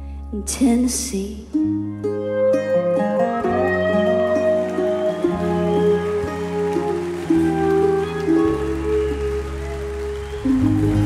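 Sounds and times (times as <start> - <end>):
live country band music: 1.9 - 11.0.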